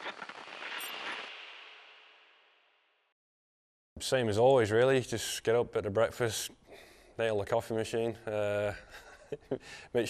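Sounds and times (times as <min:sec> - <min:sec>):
crackling transition effect: 0:00.0 - 0:03.1.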